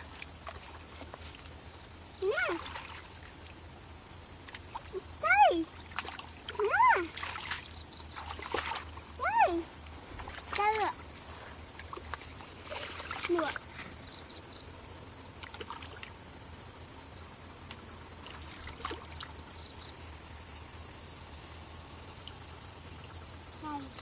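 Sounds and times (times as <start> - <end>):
insects chirring: 0.0 - 24.0
hands splashing in muddy water: 5.9 - 8.9, 11.8 - 13.7.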